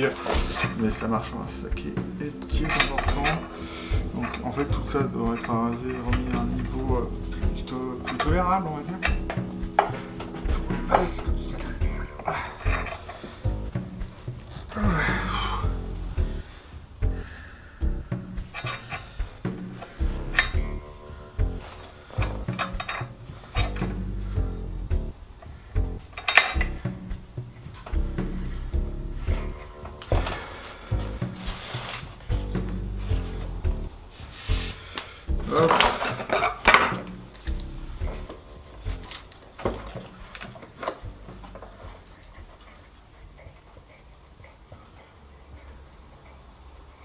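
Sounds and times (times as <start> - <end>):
background music: 0.0 - 43.7
metal clamps clicking and knocking: 2.4 - 3.5, 12.2 - 13.2, 18.4 - 20.8, 21.4 - 24.0, 26.1 - 26.8, 35.0 - 41.7.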